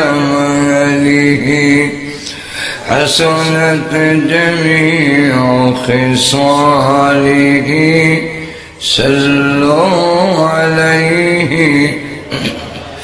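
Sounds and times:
man chanting into a microphone: 0.0 - 13.0.

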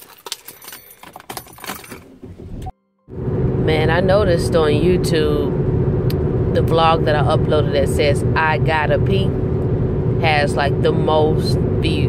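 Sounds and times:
keys jangling: 0.0 - 2.2.

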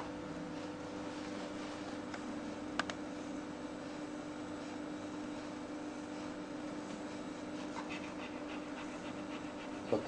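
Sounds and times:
dog panting quickly: 6.2 - 10.0.

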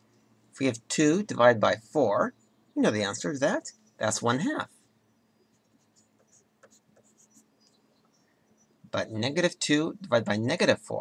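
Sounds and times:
pencil scratching on paper: 5.5 - 7.5.

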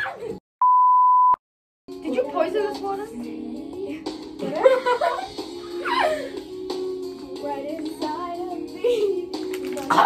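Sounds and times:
background music: 1.9 - 10.0.

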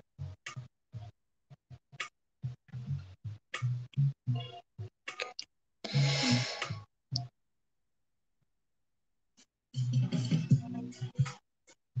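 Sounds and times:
lo-fi chillhop music: 9.8 - 11.4.

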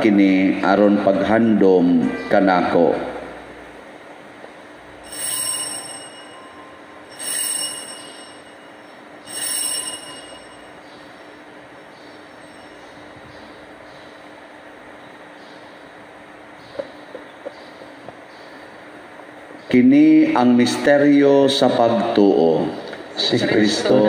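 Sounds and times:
altar bells ringing: 5.0 - 13.6.

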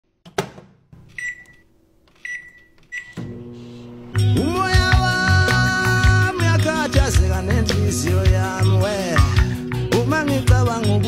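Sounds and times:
microwave oven humming: 1.0 - 4.4
microwave click: 2.2 - 3.5.

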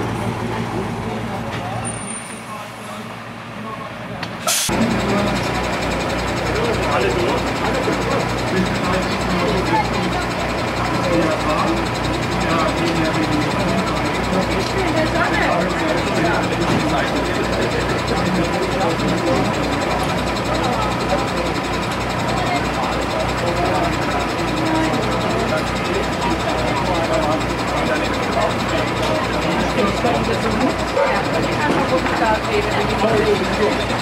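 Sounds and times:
engine idling: 0.0 - 34.0
murmur of voices: 0.0 - 34.0.

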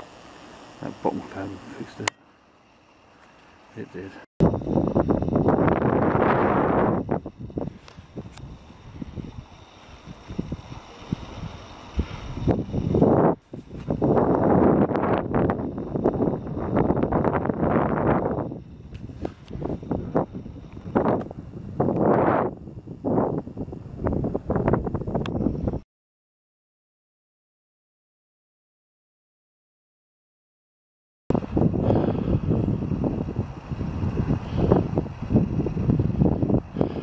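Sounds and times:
wind buffeting microphone: 4.4 - 25.8, 31.3 - 37.0.

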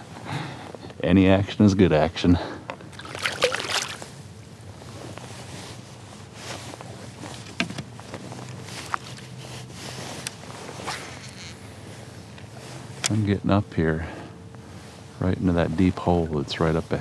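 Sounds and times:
kayak paddle stroking water: 2.9 - 4.1
water wash: 3.0 - 4.0.

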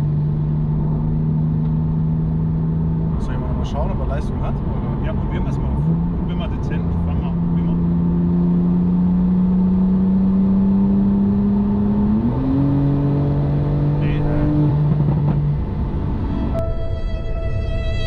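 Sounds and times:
car engine accelerating: 0.0 - 18.0
music: 16.3 - 18.0.

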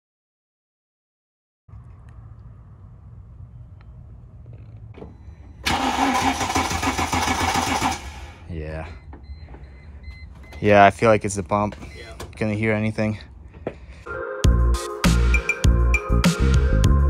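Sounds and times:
starter motor cranking engine: 5.6 - 8.4.

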